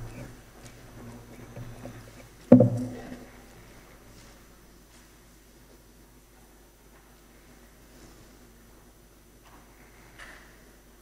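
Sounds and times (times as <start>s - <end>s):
steady low hum: 0.0s - 11.0s
faint knocks: 1.4s - 3.4s
loud thump: 2.5s - 3.2s.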